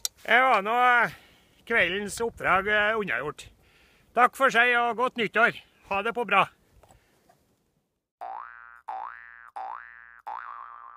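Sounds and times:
springy boing tones: 8.2 - 10.9.

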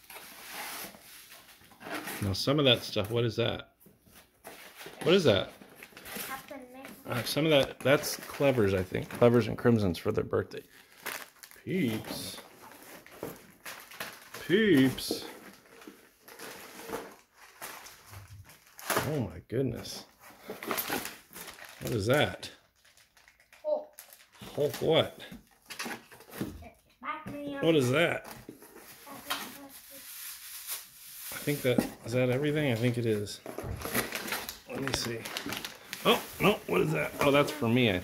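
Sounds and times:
cardboard boxes rustling: 31.3 - 38.0.

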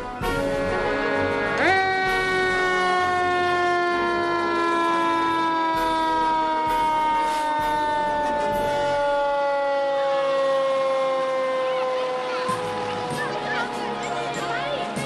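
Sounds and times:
fire engine siren winding down: 0.0 - 15.0.

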